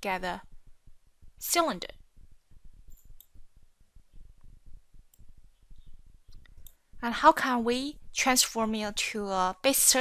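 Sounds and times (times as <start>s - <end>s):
computer mouse clicking: 2.9s - 3.4s, 5.1s - 6.8s.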